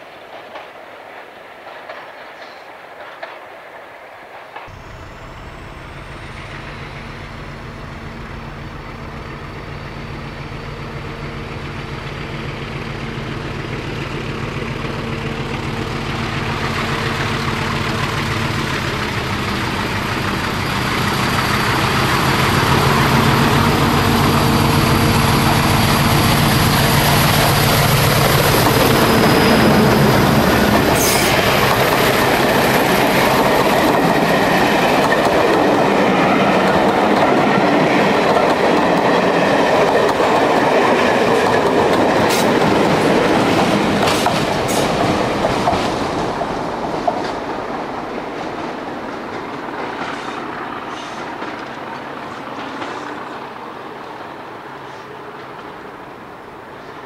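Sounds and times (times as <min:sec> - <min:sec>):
train wheels on rails: 0:00.0 - 0:57.0
locomotive engine hum: 0:04.7 - 0:56.9.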